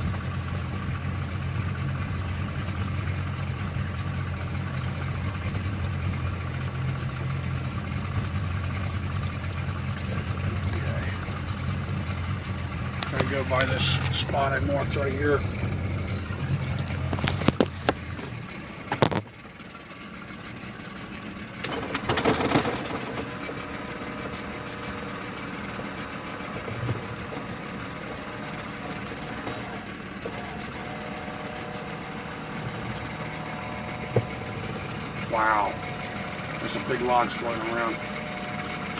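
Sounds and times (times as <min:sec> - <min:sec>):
boat engine idling: 0:00.0 - 0:38.9
steady hum: 0:23.0 - 0:38.9.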